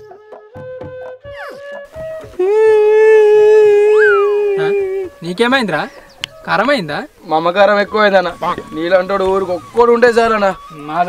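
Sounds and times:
whistle-like glide: 3.9s - 4.7s.

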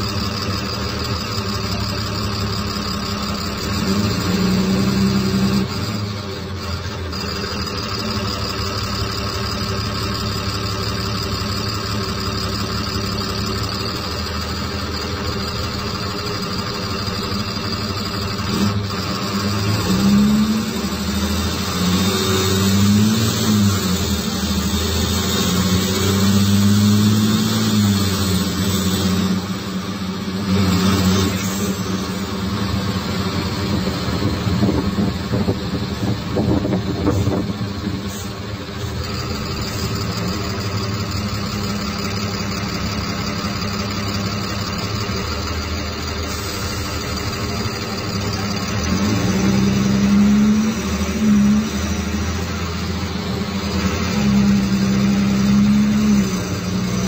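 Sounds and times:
bus diesel engine accelerating: 0.0s - 57.0s
turbo whining: 0.0s - 57.0s.

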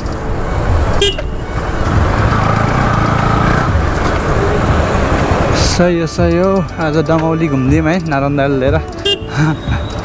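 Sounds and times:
motorcycle engine: 0.0s - 6.0s.

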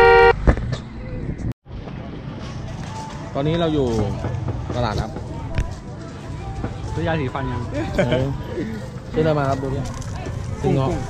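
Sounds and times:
two-tone vehicle horn: 0.0s - 0.4s
street noise: 0.0s - 11.0s.

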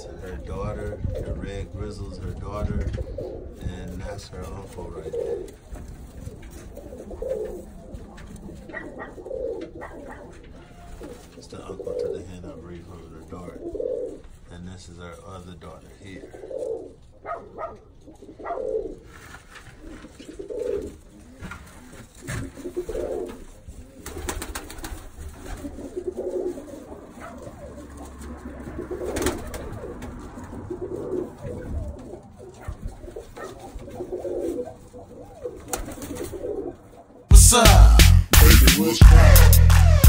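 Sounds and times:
pigeons cooing: 0.0s - 37.3s
loud music with heavy beat: 37.3s - 40.0s.

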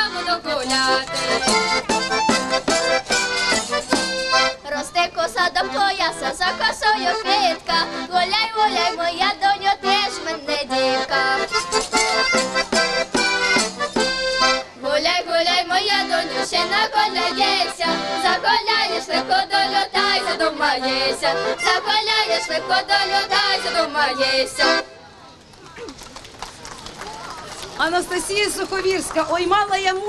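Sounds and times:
accordion playing folk tune: 0.0s - 25.1s.

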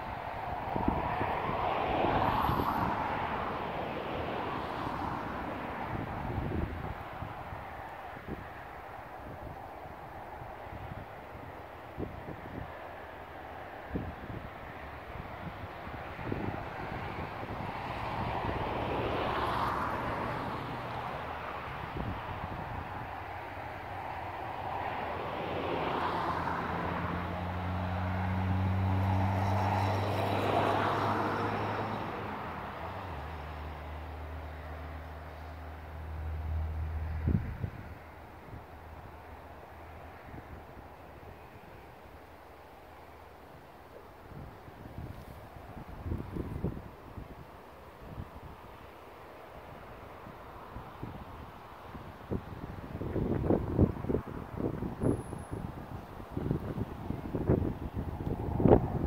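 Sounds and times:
wind thumps on microphone: 56.4s - 59.0s.

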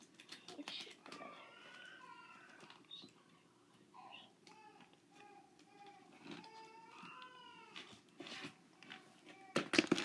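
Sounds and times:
rustling and handling noises: 0.0s - 3.8s, 4.4s - 10.0s.

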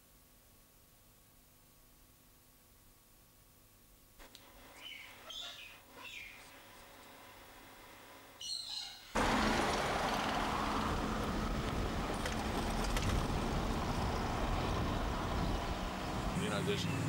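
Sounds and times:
car driving along street: 9.2s - 17.0s.

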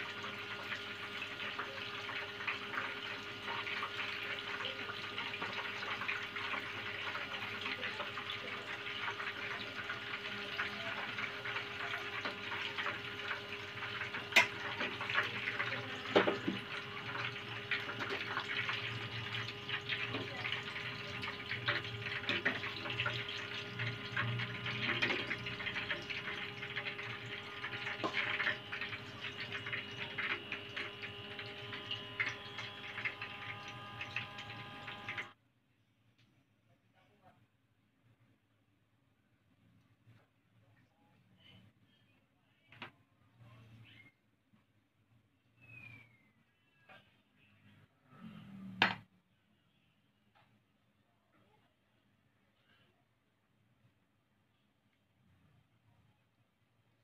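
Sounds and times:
deep-frying sizzle in oil: 0.0s - 35.4s.

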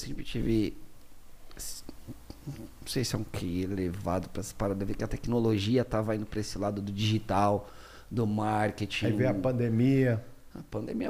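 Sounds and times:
man speaking: 0.0s - 0.8s, 1.6s - 11.0s
breathy hiss: 7.6s - 8.2s.

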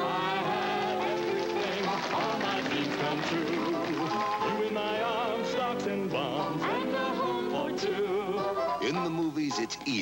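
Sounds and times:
man and woman singing duet: 0.0s - 9.0s
band accompaniment: 0.4s - 9.8s.

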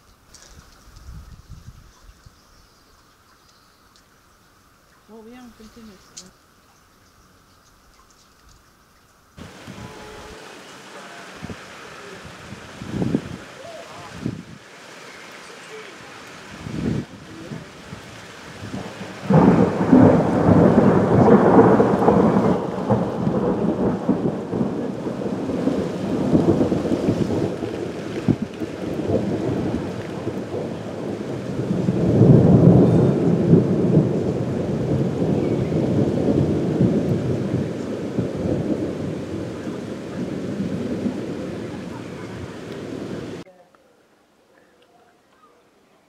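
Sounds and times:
falling rain: 0.0s - 46.0s
thunder rumbling: 9.4s - 43.5s.

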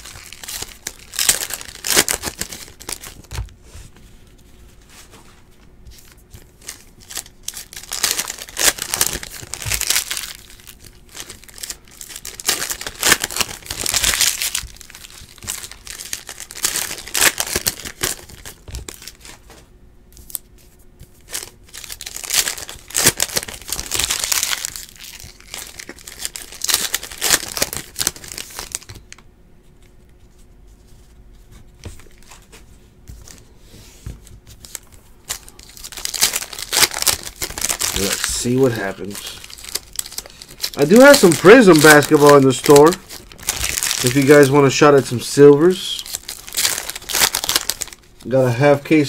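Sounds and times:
foil wrappers tearing and crinkling: 0.0s - 3.5s, 6.0s - 19.5s, 21.1s - 29.1s, 34.6s - 49.0s.

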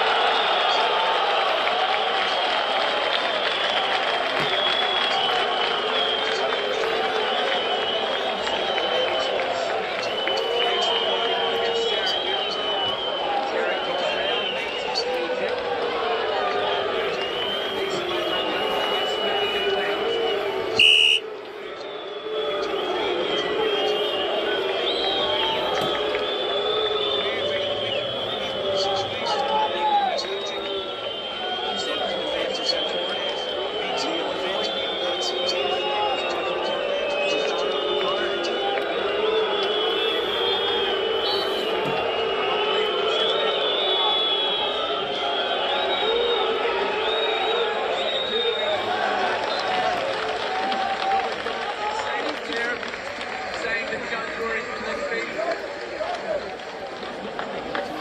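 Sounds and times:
murmur of voices: 0.0s - 58.0s.

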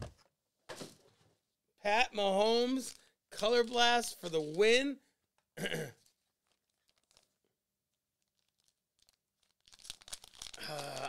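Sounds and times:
foil wrapper crinkling and tearing: 2.7s - 4.9s, 6.0s - 7.4s, 8.2s - 11.0s.

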